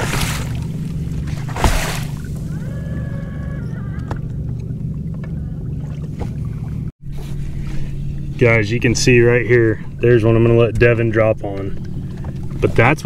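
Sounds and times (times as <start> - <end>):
boat motor hum: 0.0 - 13.0.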